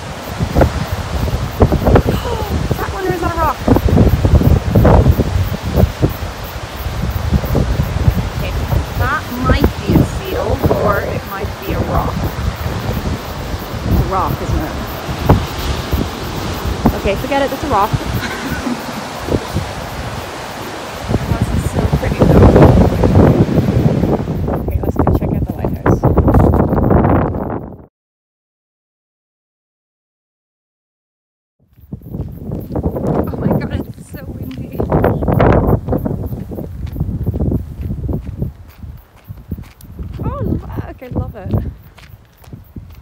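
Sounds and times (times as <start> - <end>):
surf washing: 0.0 - 27.0, 32.1 - 43.0
long grass rustling: 0.0 - 27.6, 31.7 - 43.0
wind buffeting microphone: 0.0 - 27.9, 31.7 - 43.0.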